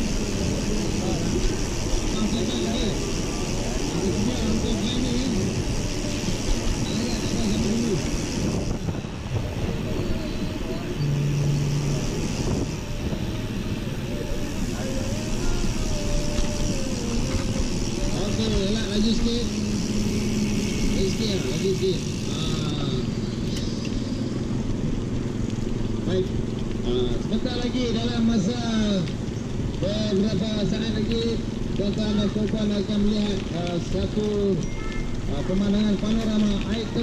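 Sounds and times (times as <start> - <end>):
wind buffeting microphone: 0.0 - 22.2
indistinct voices: 0.0 - 24.7.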